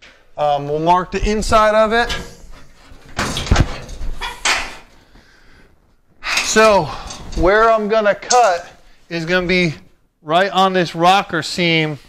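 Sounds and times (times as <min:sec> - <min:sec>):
rustling noise: 0:01.0 - 0:10.1.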